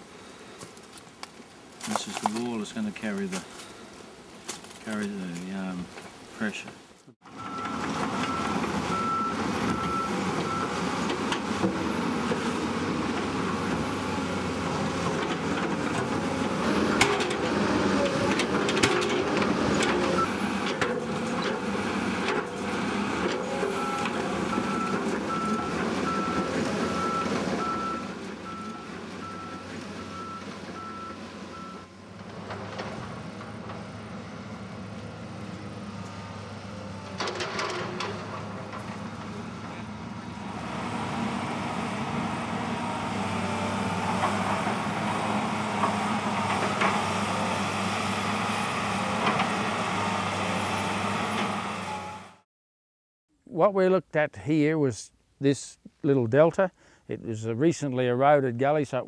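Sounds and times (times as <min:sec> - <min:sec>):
excavator engine under load: 0:07.2 - 0:52.4.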